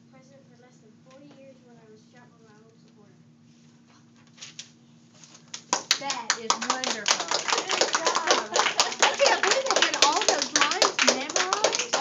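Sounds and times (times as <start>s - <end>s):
audience applauding: 5.7s - 12.0s.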